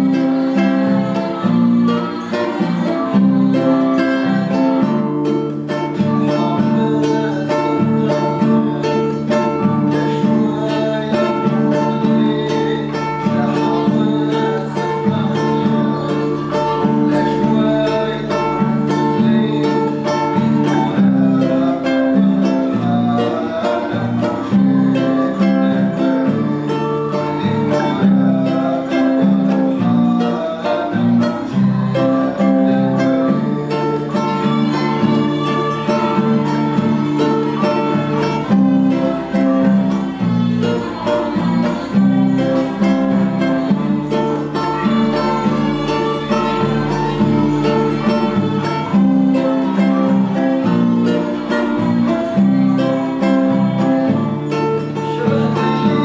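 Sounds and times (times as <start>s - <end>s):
classical guitar strumming: 0.0s - 56.0s.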